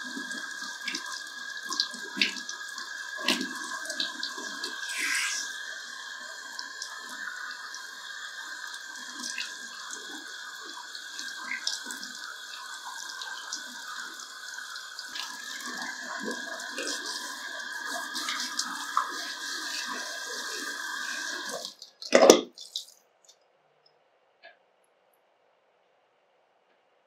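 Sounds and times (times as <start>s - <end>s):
water spraying from shower head: 4.3s - 5.8s.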